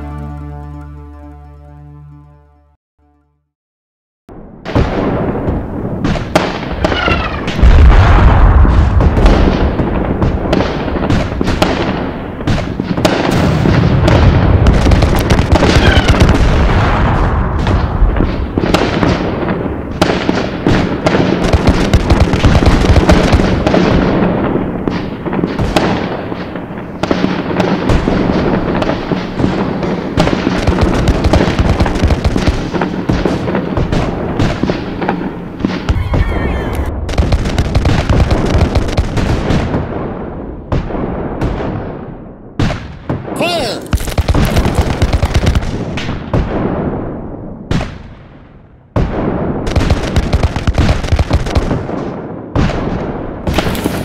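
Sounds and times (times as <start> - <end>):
steady low drone: 0.0 - 3.2
gunfire volleys: 8.6 - 42.0, 42.6 - 46.9, 49.0 - 54.0.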